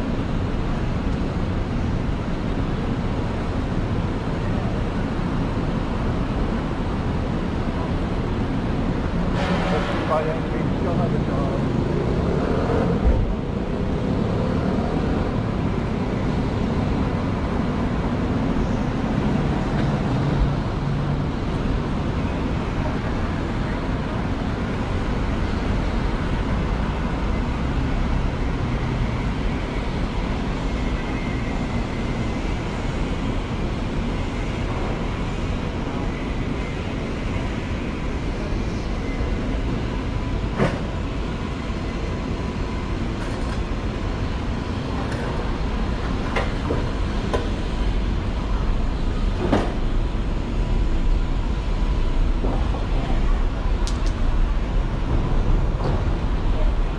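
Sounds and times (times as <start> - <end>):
street traffic rumble: 0.0 - 56.9.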